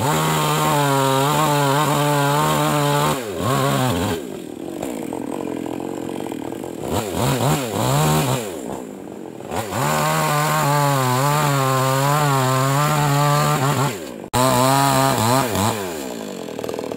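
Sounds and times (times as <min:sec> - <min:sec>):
chainsaw revving and cutting log: 0:00.0 - 0:16.9.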